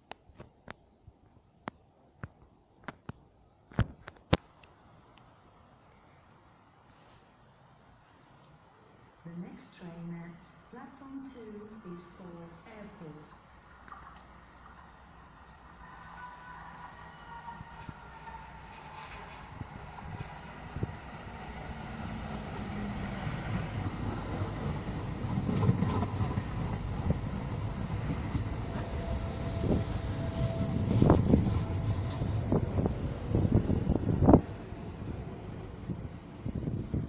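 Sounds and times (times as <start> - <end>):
electric train approaching: 13.4 - 37.0
wheels clicking over rail joints: 24.6 - 27.5.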